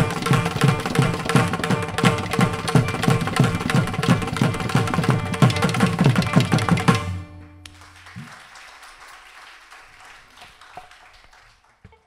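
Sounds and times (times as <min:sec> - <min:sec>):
percussion ensemble: 0:00.0 - 0:08.5.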